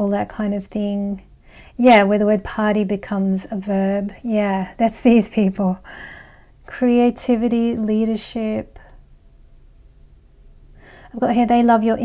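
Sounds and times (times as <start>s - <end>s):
faint low room hum: 0.0s - 12.0s
short in-breath: 5.8s - 6.6s, 10.8s - 11.1s.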